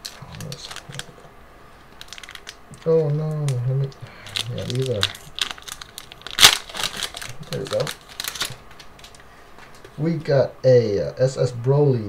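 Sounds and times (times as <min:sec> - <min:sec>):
handling card stack: 0:00.0 - 0:01.3, 0:01.9 - 0:10.0
foil wrapper crackling: 0:00.0 - 0:09.3.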